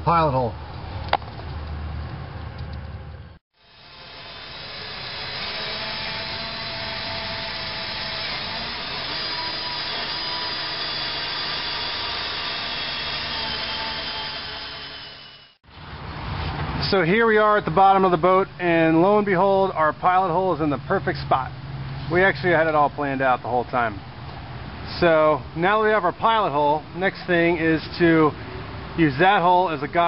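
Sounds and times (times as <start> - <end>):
electric drill whining: 3.6 - 15.6.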